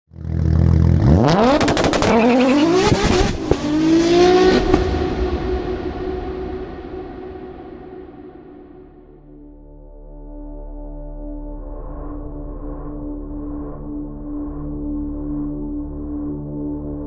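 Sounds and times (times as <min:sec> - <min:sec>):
car engine revving: 0:00.2 - 0:08.9.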